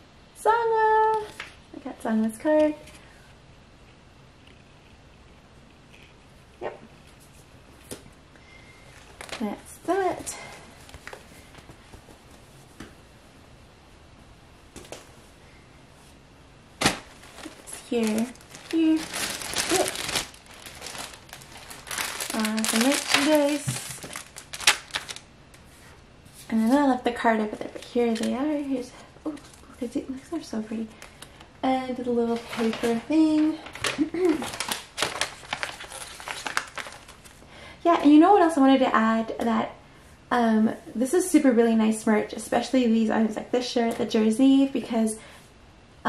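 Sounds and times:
rustling clothing and plastic packaging: 7.0s - 12.8s, 16.8s - 38.2s.

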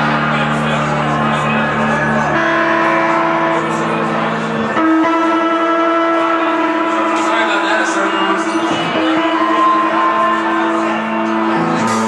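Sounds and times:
rock band playing chords: 0.0s - 12.0s.

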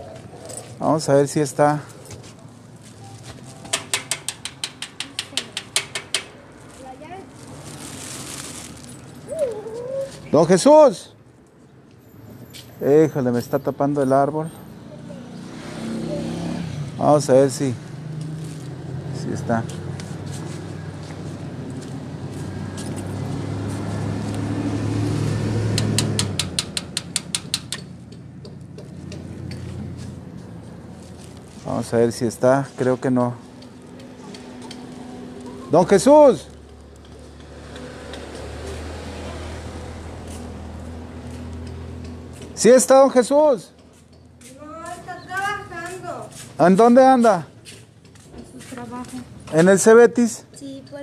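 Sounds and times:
vehicle engine rumble passing: 12.0s - 42.6s.

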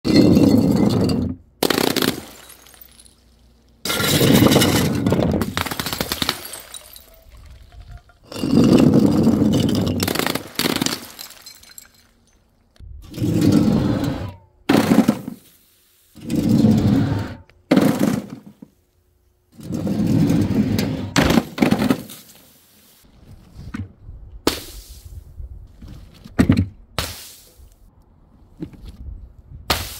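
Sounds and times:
glass bottles shattering: 0.1s - 7.5s, 9.1s - 12.5s
water balloons bursting with splash: 10.0s - 11.4s.

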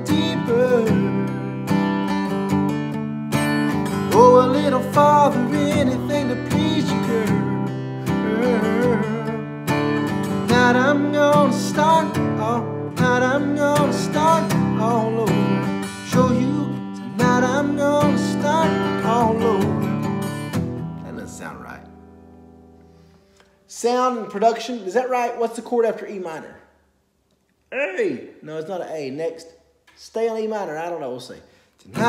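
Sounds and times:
man singing: 0.0s - 1.7s, 4.0s - 20.1s
acoustic guitar strumming: 0.0s - 23.5s
man speaking: 21.0s - 22.0s, 23.7s - 26.7s, 27.7s - 32.0s.

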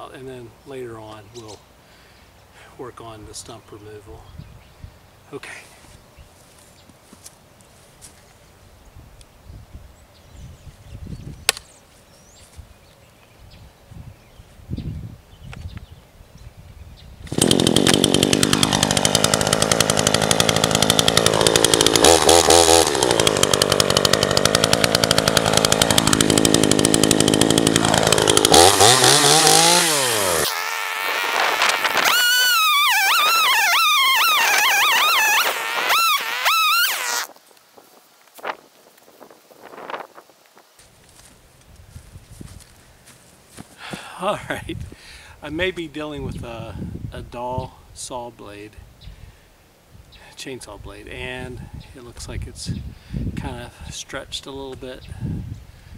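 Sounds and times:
chainsaw revving: 17.3s - 37.3s.

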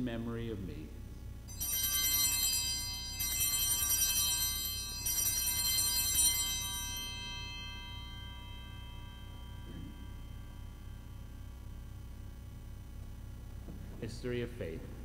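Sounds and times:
altar bells ringing: 1.5s - 12.4s.

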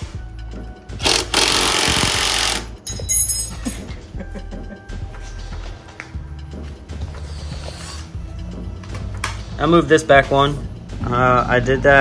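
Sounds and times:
background music: 0.0s - 12.0s
cordless drill running: 1.0s - 2.7s.

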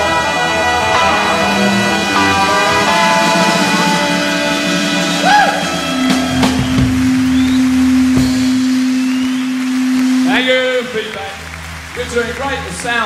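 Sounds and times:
rock band playing: 0.0s - 13.0s.

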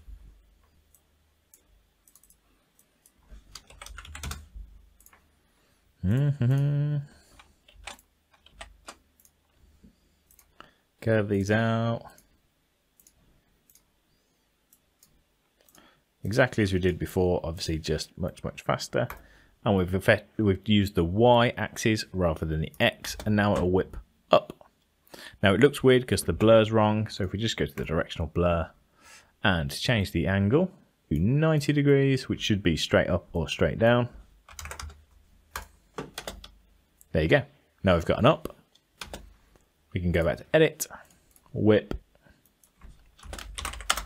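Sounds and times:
computer mouse clicks: 0.7s - 4.4s, 5.0s - 5.3s, 7.3s - 9.5s, 10.2s - 10.7s, 13.0s - 13.9s, 14.7s - 15.8s
computer keyboard tapping: 3.4s - 5.3s, 7.3s - 9.4s, 34.5s - 36.6s, 38.4s - 39.3s, 41.9s - 44.0s.

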